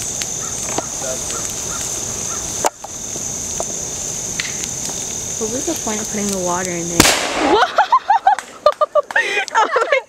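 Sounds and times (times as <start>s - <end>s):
sharp pops from fire: 0.0s - 9.6s
bonfire crackling: 0.0s - 10.0s.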